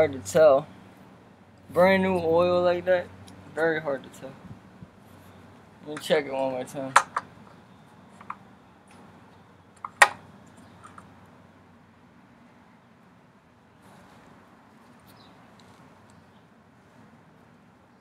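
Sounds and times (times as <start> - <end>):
faint steady background noise: 0.0 - 18.0.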